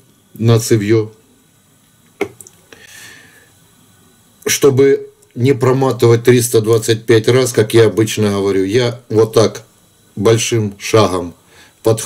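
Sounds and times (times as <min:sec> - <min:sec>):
soft hiss: 0:00.0 - 0:12.0.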